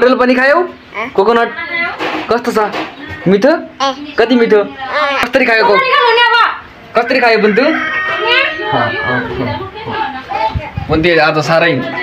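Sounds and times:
toddler babbling: 0:00.9 - 0:01.3, 0:03.8 - 0:04.2, 0:04.8 - 0:05.4.

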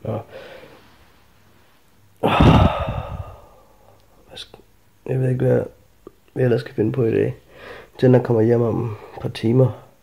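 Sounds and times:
breath buffeting microphone: 0:02.2 - 0:03.6
man sighing heavily: 0:02.2 - 0:03.7.

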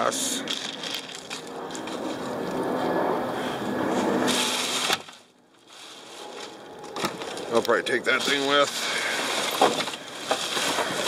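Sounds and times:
plastic and trash rustling: 0:00.5 - 0:02.3, 0:04.3 - 0:11.0.

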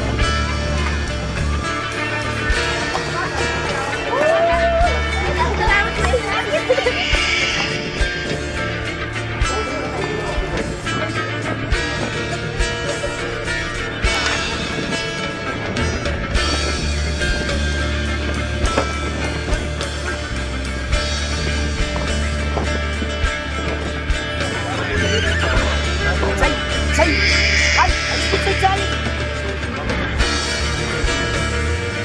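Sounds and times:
background music with bass line: 0:00.0 - 0:32.0
horse whinnying: 0:06.7 - 0:08.5, 0:24.6 - 0:29.2.

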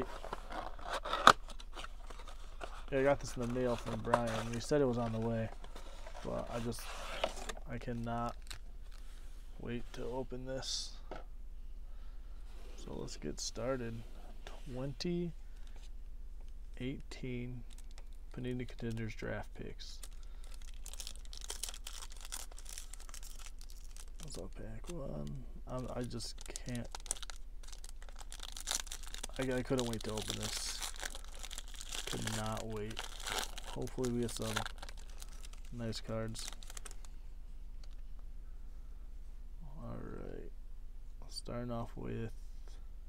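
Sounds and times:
foil wrapper crinkling and tearing: 0:00.0 - 0:06.8, 0:20.0 - 0:25.0, 0:25.8 - 0:37.1.

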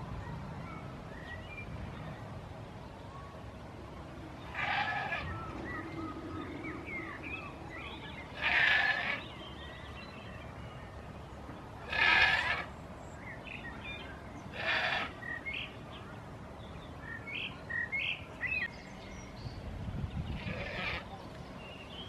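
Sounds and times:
goats bleating: 0:04.5 - 0:05.3, 0:08.3 - 0:09.2, 0:11.8 - 0:12.7, 0:14.5 - 0:15.2, 0:20.4 - 0:21.1.

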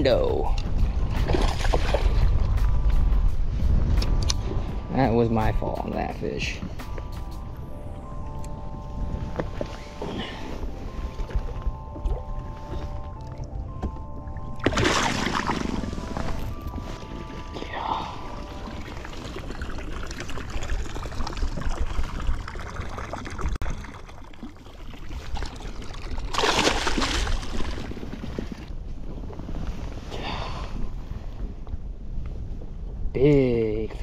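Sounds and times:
wind buffeting microphone: 0:00.0 - 0:23.9.

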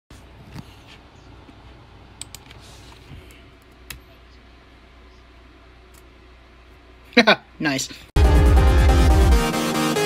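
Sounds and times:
low steady hum: 0:00.1 - 0:08.1.

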